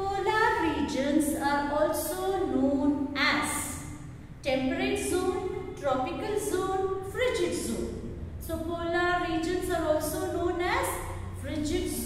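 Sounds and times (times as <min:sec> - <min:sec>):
woman reading aloud: 0:00.0 - 0:12.0.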